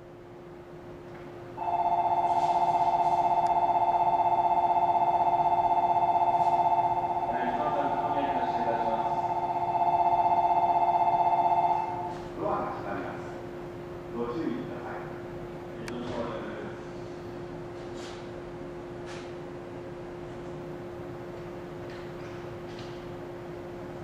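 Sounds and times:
steady low hum: 0.0s - 24.0s
electronic warbling departure bell: 1.6s - 12.2s
person speaking: 7.2s - 9.4s.

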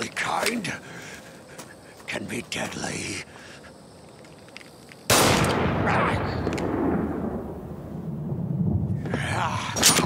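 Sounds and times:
pistol shot with echoing tail: 5.1s - 7.5s.

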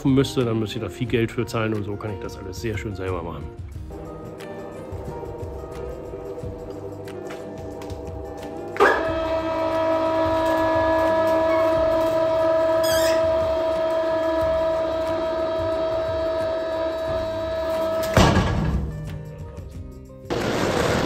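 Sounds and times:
electric hoist motor whining: 4.0s - 18.4s
hoist motor clunk: 17.7s - 19.1s.

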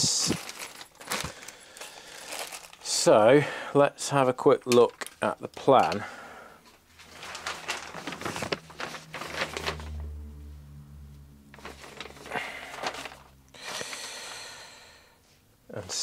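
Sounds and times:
paper rustling and crackling: 0.0s - 2.8s, 7.0s - 10.2s, 11.5s - 14.1s
low steady hum: 6.1s - 15.7s.

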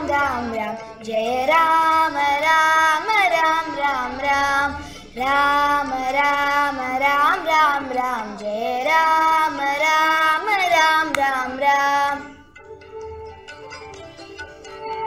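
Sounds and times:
girls singing devotional song: 0.0s - 13.4s.

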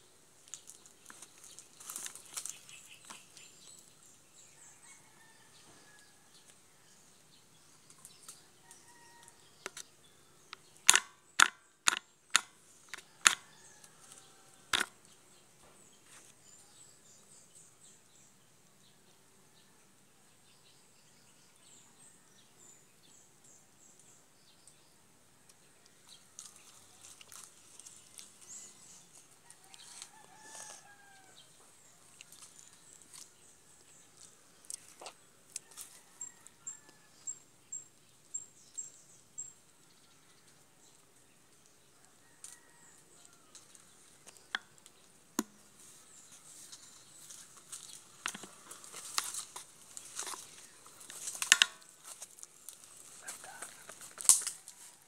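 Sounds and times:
faint rooster crowing: 4.5s - 7.1s, 8.3s - 9.8s, 13.0s - 15.0s, 28.5s - 33.2s, 35.6s - 37.4s, 41.9s - 43.8s, 52.8s - 55.0s.

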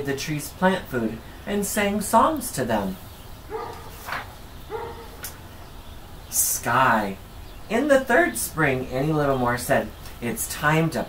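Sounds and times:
dog barking: 3.5s - 4.0s, 4.7s - 5.2s.

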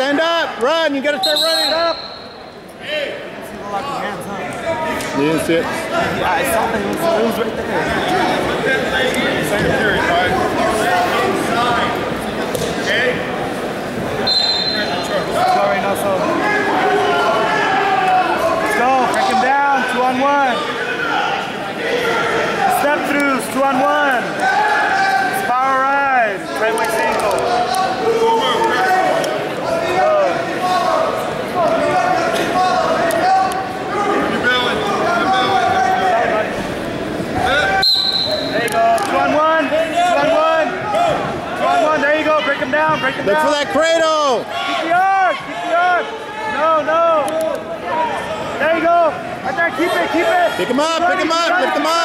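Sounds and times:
people talking and calling out: 0.0s - 52.0s.

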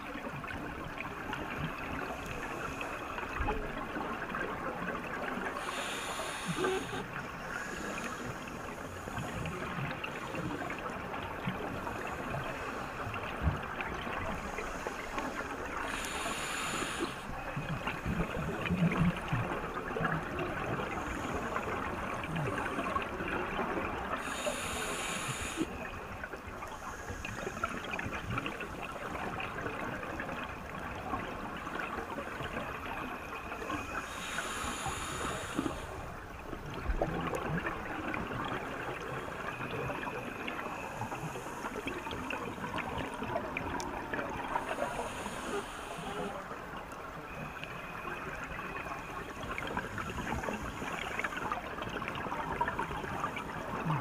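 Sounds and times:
scuba exhaust bubbles: 0.2s - 54.0s
underwater crackling hiss: 1.4s - 4.4s, 5.1s - 29.4s, 31.2s - 36.4s, 38.1s - 54.0s.

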